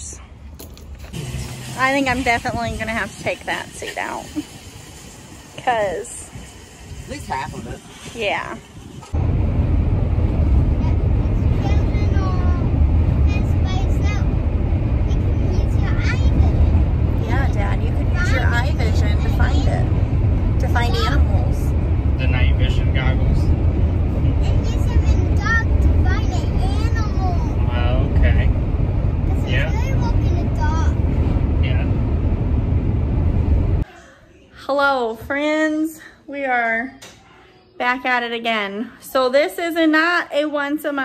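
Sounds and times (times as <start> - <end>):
van road and engine rumble: 0.0 - 6.8, 8.7 - 33.9.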